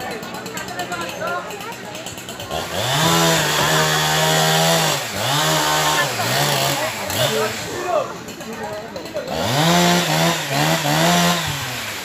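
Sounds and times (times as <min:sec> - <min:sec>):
small engine revving: 0:00.6 - 0:12.0.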